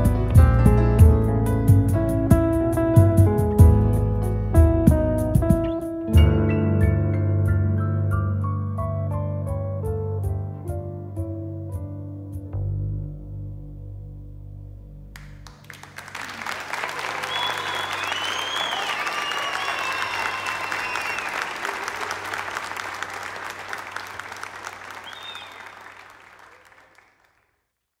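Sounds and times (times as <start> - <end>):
jazz piano and bass chord: 0.0 - 15.5
audience applause: 15.2 - 27.6
whistles: 16.9 - 21.7, 24.9 - 26.0.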